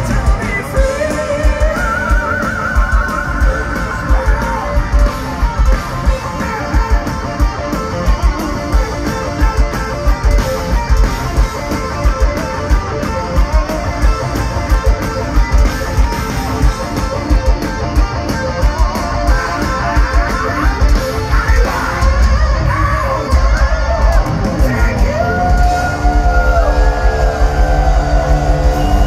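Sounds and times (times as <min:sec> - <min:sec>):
distorted rhythm guitar: 0:00.0 - 0:29.0
electric guitar melody: 0:00.0 - 0:29.0
pounding drum beat: 0:00.0 - 0:29.0.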